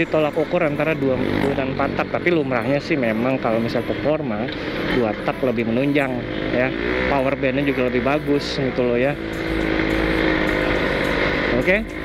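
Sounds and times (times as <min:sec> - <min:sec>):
two-stroke motorcycle engine cruising: 0:00.0 - 0:12.0.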